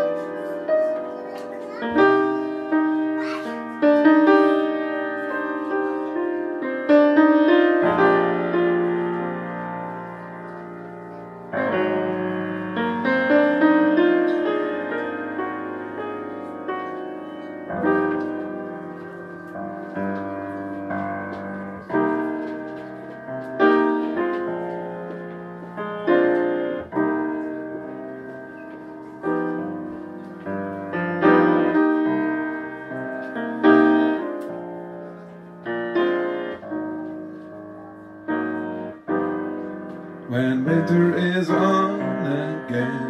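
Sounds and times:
solo jazz piano: 0.0s - 43.0s.

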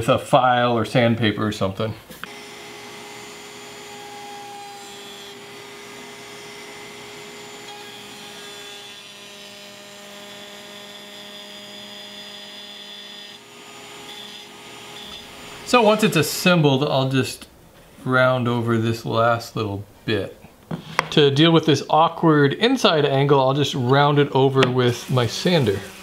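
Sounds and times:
router motor whine: 2.2s - 15.7s, 25.0s - 26.0s
router cutting wood: 2.2s - 16.0s, 24.6s - 26.0s.

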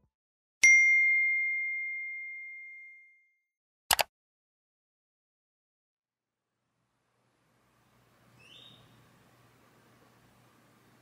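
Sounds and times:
bell-like ding: 0.6s - 3.4s.

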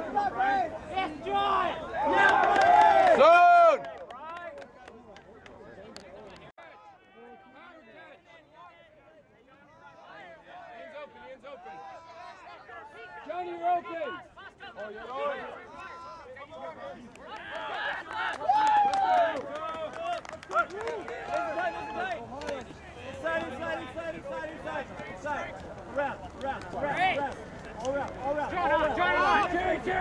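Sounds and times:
players shouting and calling out: 0.0s - 30.0s.

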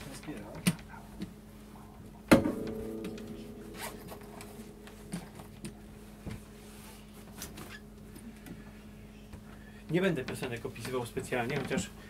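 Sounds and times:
guitar body knock: 2.3s - 5.3s
open guitar strings ringing: 2.3s - 6.7s.

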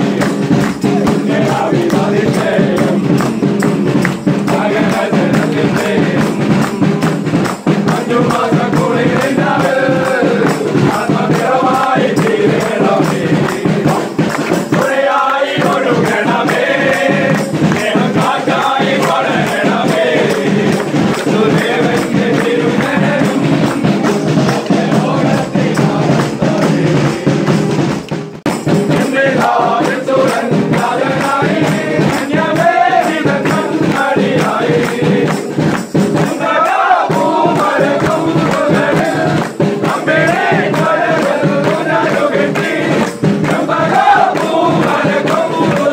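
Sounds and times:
group singing a carol: 0.0s - 28.0s, 28.6s - 45.9s
rhythmic hand-clapping: 0.0s - 45.9s.

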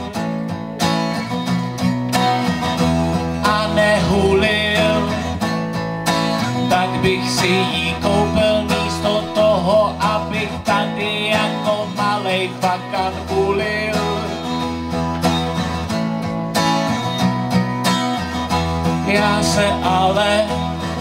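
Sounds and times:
acoustic guitar strummed: 0.0s - 21.0s
man singing: 3.3s - 5.5s, 6.4s - 14.9s, 18.8s - 21.0s.

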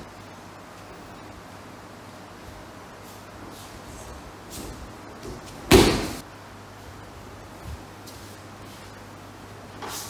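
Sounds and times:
body thudding on mat: 4.7s - 6.2s.

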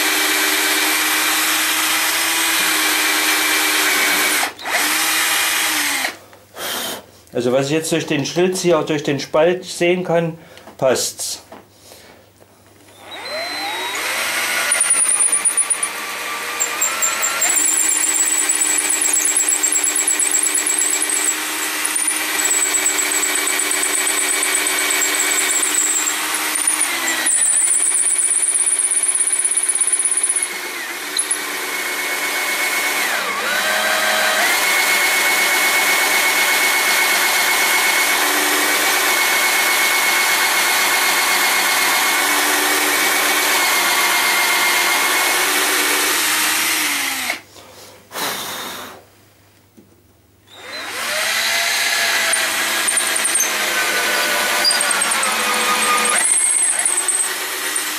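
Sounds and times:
electric drill boring wood: 0.0s - 7.0s, 12.9s - 47.4s, 50.5s - 57.9s.

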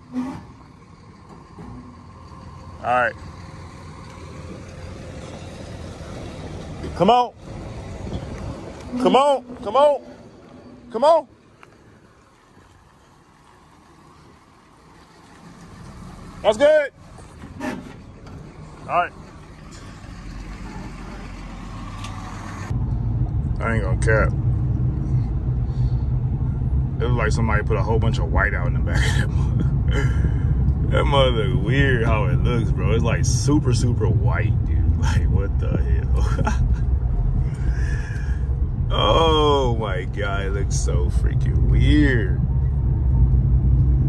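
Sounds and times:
truck engine running low: 0.0s - 44.0s.

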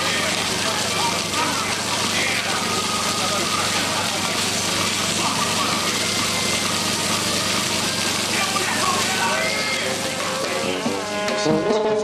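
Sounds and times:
fountain water splashing: 0.0s - 11.0s
faint crowd voices: 0.0s - 12.0s.

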